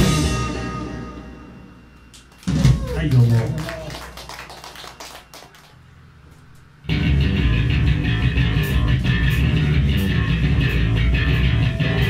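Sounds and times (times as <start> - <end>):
band chord ringing out: 0.0 - 2.1.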